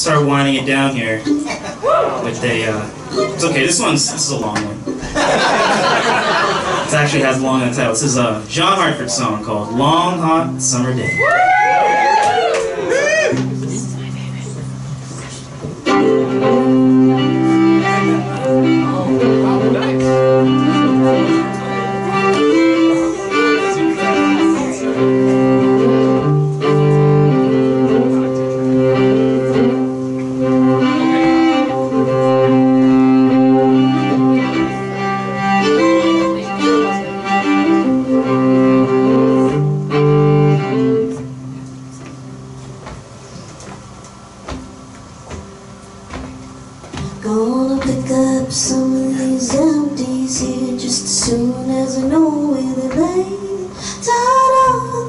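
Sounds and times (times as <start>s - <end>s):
string band playing: 0.0s - 55.0s
bowed fiddle: 13.3s - 42.9s.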